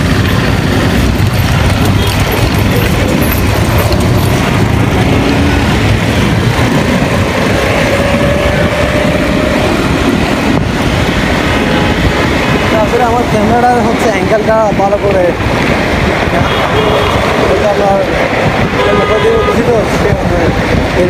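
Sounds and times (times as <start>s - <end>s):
road traffic noise: 0.0s - 21.0s
wind on microphone: 0.0s - 21.0s.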